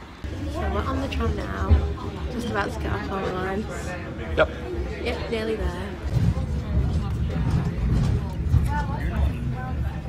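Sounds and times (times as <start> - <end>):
faint passenger voices: 0.0 - 10.0
tram rumbling on tracks: 6.0 - 10.0.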